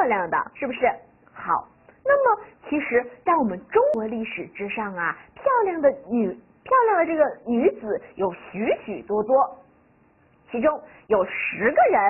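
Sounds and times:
woman speaking: 0:00.0 - 0:09.7, 0:10.4 - 0:12.0.

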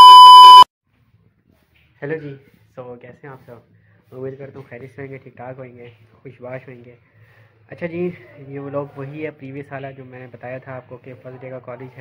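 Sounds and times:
high test-tone beep: 0:00.0 - 0:00.7.

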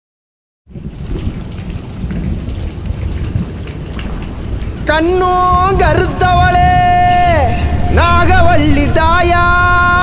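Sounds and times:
rain hiss: 0:00.7 - 0:10.0
thunder rumble: 0:00.7 - 0:10.0.

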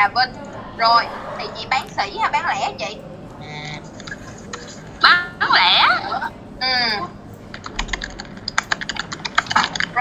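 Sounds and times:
keyboard keystroke clicks: 0:07.5 - 0:09.9.

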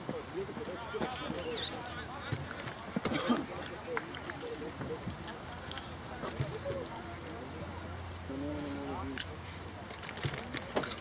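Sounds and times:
voices calling out: 0:00.0 - 0:09.7.

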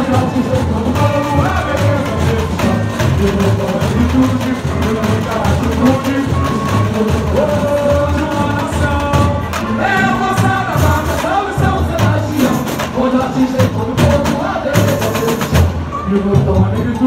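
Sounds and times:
bass drum pulses: 0:00.0 - 0:17.0
samba drumming: 0:00.0 - 0:17.0.

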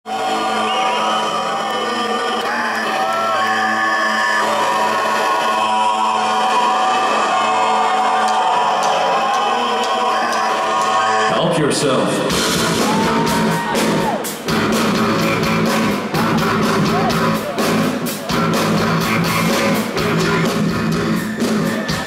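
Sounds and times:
crowd voices: 0:00.0 - 0:22.0
live rock band: 0:11.9 - 0:22.0.

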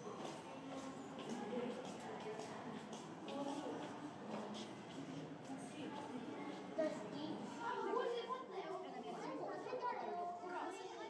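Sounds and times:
chatter of many voices: 0:00.0 - 0:11.0
children's voices: 0:00.0 - 0:11.0.

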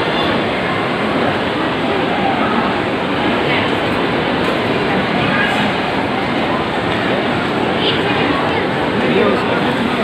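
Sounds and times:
shop background din: 0:00.0 - 0:10.0.

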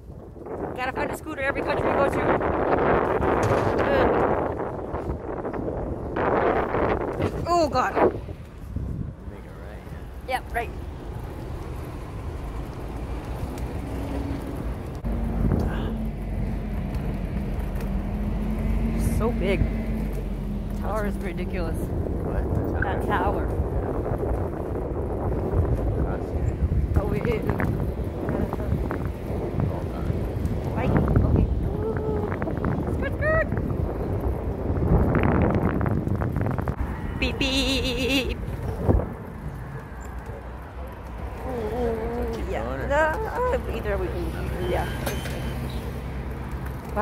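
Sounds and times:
scooter road rumble: 0:00.0 - 0:47.0
wind on microphone: 0:00.0 - 0:47.0.

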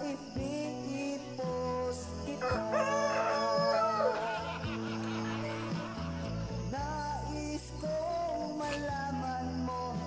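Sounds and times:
background music with low notes: 0:00.0 - 0:10.0
rooster crowing: 0:02.4 - 0:06.0.

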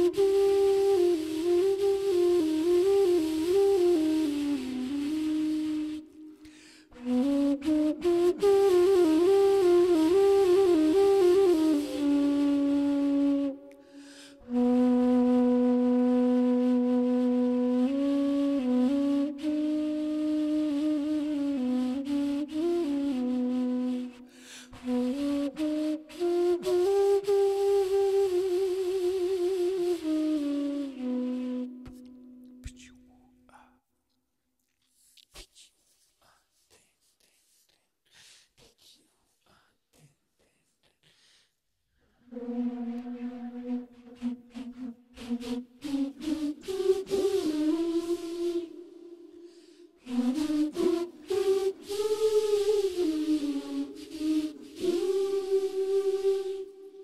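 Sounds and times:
homemade flute melody: 0:00.0 - 0:33.0, 0:42.2 - 0:57.0.

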